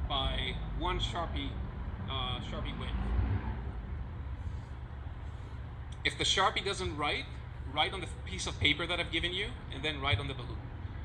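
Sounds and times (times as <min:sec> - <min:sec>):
city background rumble: 0:00.0 - 0:11.0.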